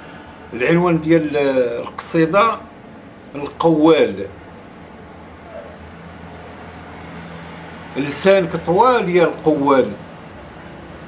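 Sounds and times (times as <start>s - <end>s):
low background rumble and hum: 0.0s - 11.0s.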